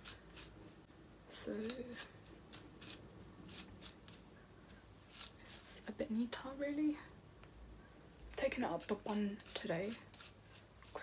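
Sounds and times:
hairbrush swishing through hair: 5.0s - 5.8s.

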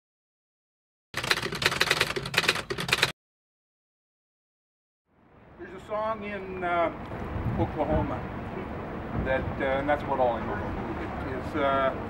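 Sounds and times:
typewriter keys clacking: 1.2s - 3.1s.

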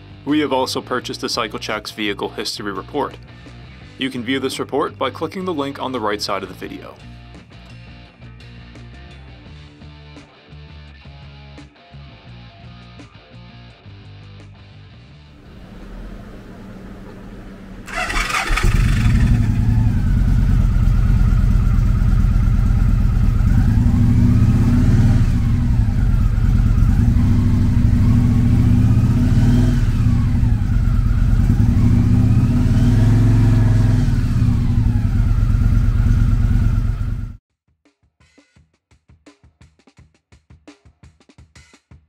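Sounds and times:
motorcycle engine cranking: 15.4s - 23.6s
motorcycle engine idling and revving: 15.4s - 37.4s.

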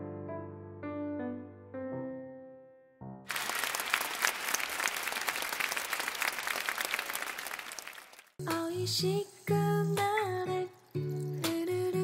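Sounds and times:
crowd applauding: 3.3s - 8.4s.

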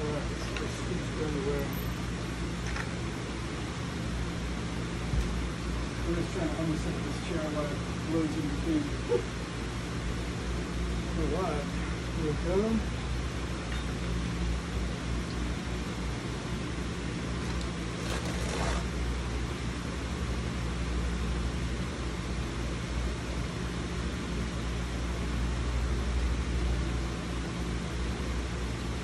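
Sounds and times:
mechanical hum with hiss: 0.0s - 29.0s.

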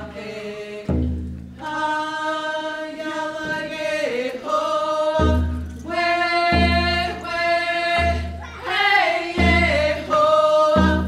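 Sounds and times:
group singing long held notes: 0.0s - 11.0s
hand drum deep beats: 7.9s - 11.0s.

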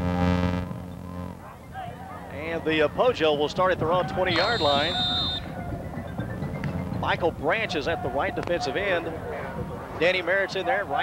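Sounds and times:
crowd noise: 0.0s - 11.0s
faint music: 0.0s - 11.0s
high whistle tone: 4.3s - 5.6s.

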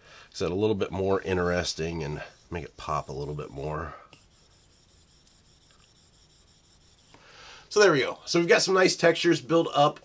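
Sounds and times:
stylus rubbing on glass screen: 1.6s - 7.2s.

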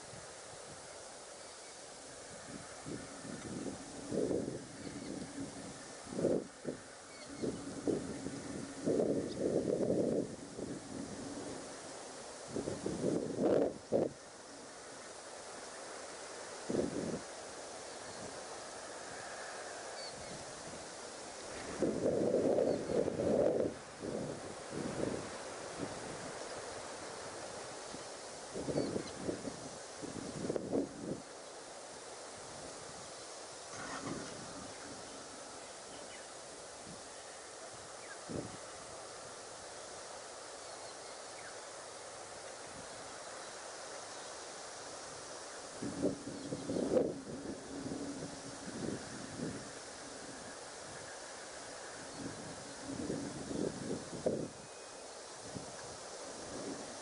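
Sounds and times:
steady hiss: 0.0s - 57.0s
wind buffeting microphone: 2.3s - 14.2s, 16.7s - 17.3s, 18.1s - 26.4s, 27.9s - 31.3s, 33.7s - 35.9s, 37.8s - 39.0s, 45.7s - 54.6s, 55.4s - 57.0s
faint bird chirps: 7.0s - 9.6s, 17.8s - 20.5s, 28.7s - 29.2s, 40.6s - 41.7s.

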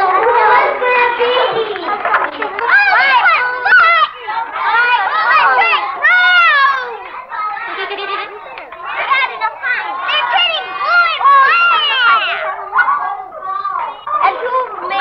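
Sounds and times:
children chattering: 0.0s - 15.0s.

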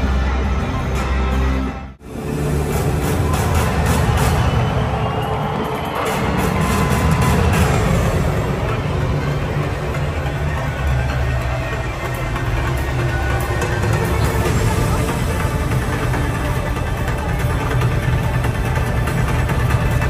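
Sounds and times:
music over loudspeakers: 0.0s - 20.0s.

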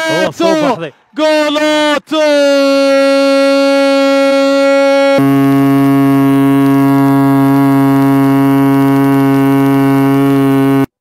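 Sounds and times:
loud held note: 3.5s - 10.9s.

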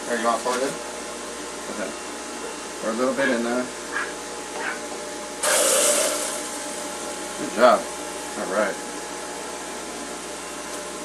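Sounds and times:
juicer motor humming: 0.0s - 11.0s.

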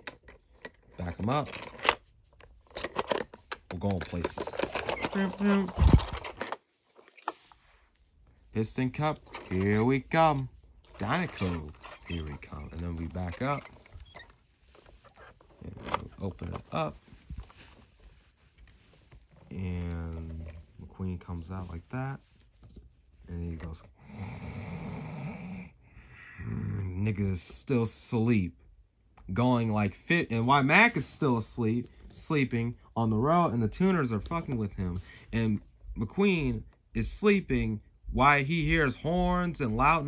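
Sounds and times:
person making throaty vocal sound: 24.1s - 27.0s.

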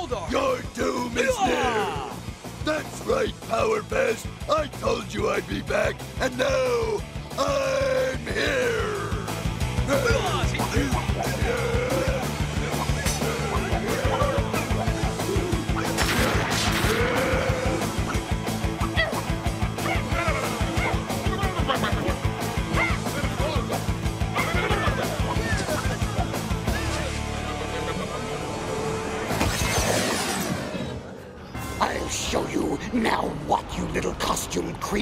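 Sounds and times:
action music with drum beat: 0.0s - 27.6s.

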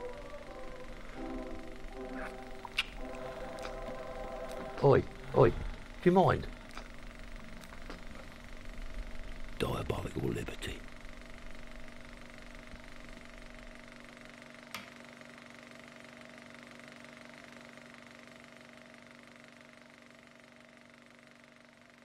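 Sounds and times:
faint hum of held tones: 0.0s - 22.0s.

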